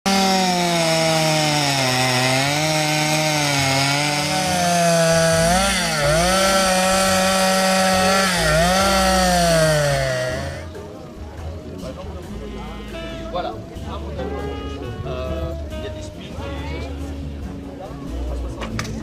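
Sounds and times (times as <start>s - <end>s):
chainsaw cutting wood: 0.0s - 10.7s.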